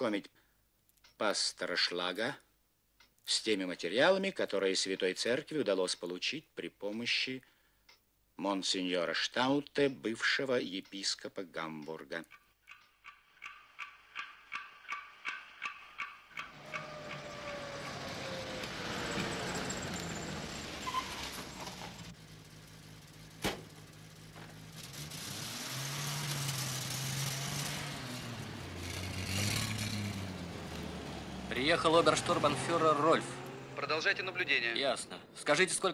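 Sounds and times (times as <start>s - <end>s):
regular ticking: 2.4s - 3.4s, 6.9s - 8.3s, 9.7s - 20.8s
car passing: 16.3s - 35.6s
car engines running: 16.4s - 35.6s.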